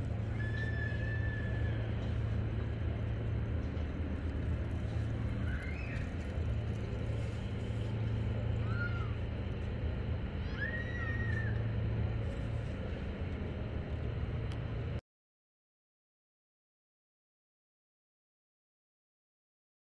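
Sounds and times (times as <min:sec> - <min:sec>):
traffic rumble: 0:00.0 - 0:15.0.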